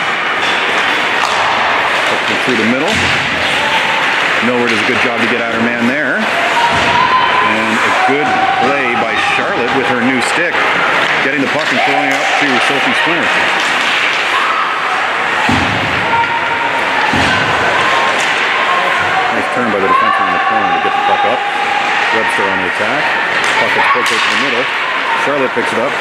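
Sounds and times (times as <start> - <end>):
arena noise: 0.0 - 26.0
voices calling out: 0.0 - 26.0.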